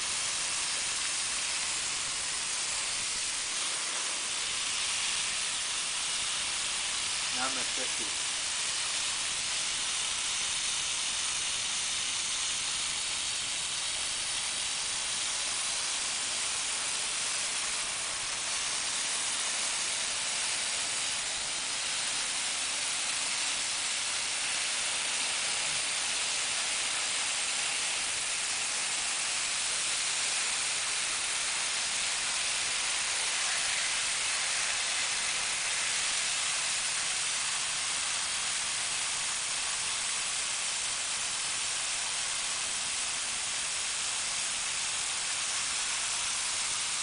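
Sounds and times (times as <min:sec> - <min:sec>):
hose water spraying on window: 0:00.0 - 0:47.0.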